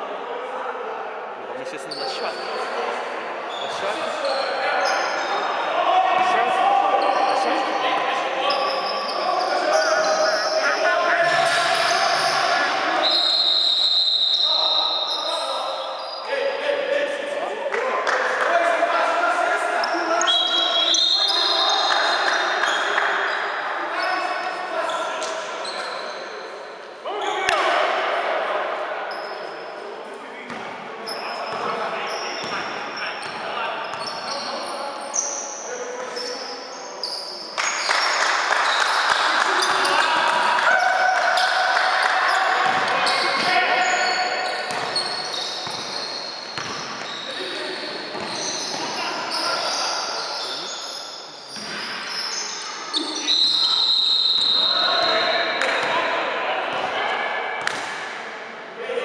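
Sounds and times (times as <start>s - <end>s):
players shouting in gymnasium: 2.0s - 17.2s, 27.0s - 29.8s, 30.5s - 59.0s.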